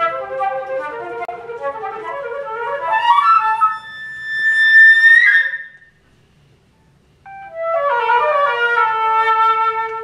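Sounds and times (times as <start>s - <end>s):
flute high note: 0.0s - 5.9s.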